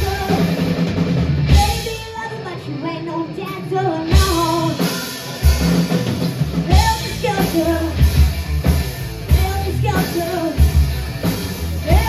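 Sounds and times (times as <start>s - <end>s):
boy singing into microphone: 0.0s - 0.6s, 1.5s - 4.9s
live rock band: 0.0s - 12.0s.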